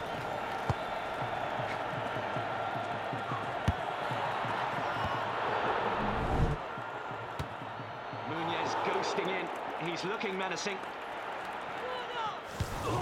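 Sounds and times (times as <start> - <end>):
stadium crowd noise: 0.0 - 13.0
football being kicked: 3.6 - 5.2.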